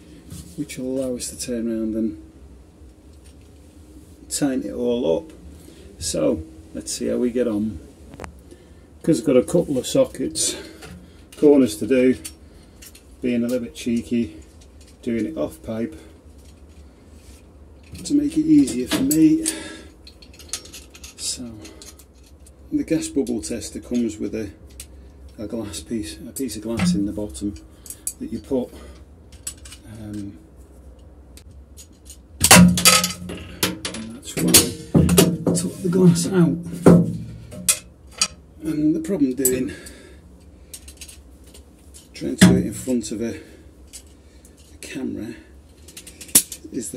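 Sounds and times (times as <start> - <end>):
steady low hum: 0.0 - 46.9
light clicks of metal tools: 16.4 - 22.6, 39.4 - 43.2.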